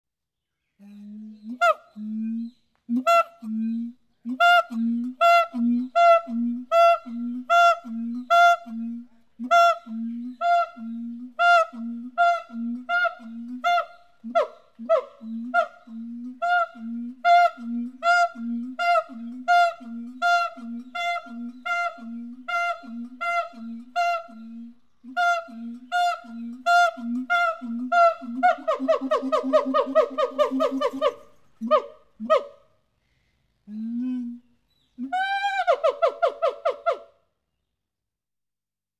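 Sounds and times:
gibbon calling: 0:01.5 - 0:32.6.

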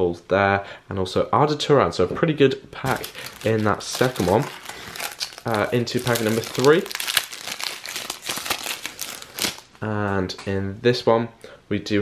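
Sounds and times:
foil wrapper crinkling: 0:02.8 - 0:09.7.

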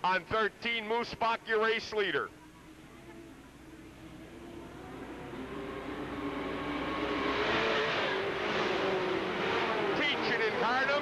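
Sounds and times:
stock car engines racing past: 0:02.1 - 0:11.0.

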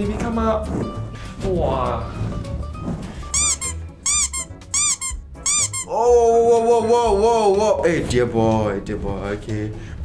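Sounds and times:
background music: 0:00.0 - 0:10.0
high rubbery squeaks: 0:03.3 - 0:05.9.

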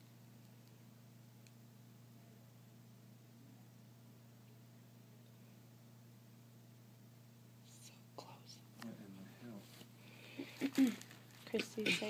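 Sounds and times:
steady low hum: 0:00.0 - 0:12.0
person whispering: 0:07.6 - 0:08.7.

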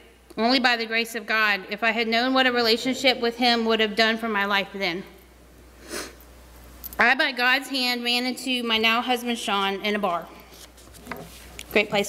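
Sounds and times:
faint room hum: 0:00.0 - 0:12.0
woman speaking: 0:00.4 - 0:05.2, 0:07.0 - 0:10.4, 0:11.7 - 0:12.0
woman sniffing: 0:05.8 - 0:06.2.

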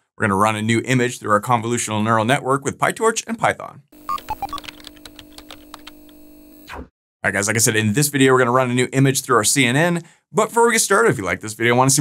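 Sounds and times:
keyboard keystroke clicks: 0:04.1 - 0:06.2.

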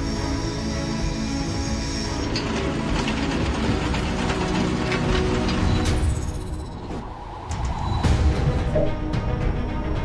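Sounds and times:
factory machinery clattering: 0:00.1 - 0:07.1.

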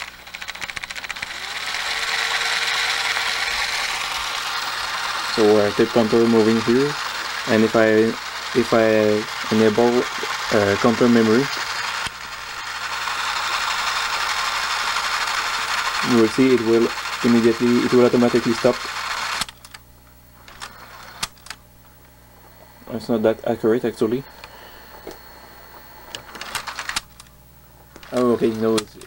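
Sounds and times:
sharp mechanical clicks: 0:00.0 - 0:19.8, 0:20.4 - 0:21.6, 0:26.1 - 0:27.4, 0:28.0 - 0:29.0
tape reels whirring: 0:00.0 - 0:29.0.

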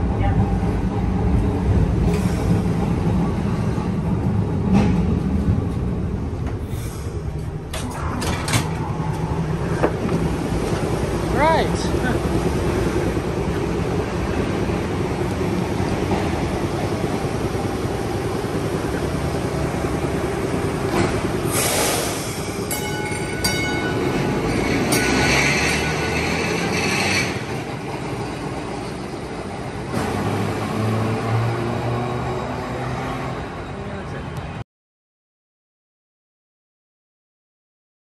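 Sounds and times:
streetcar rumbling on rails: 0:00.0 - 0:34.6.

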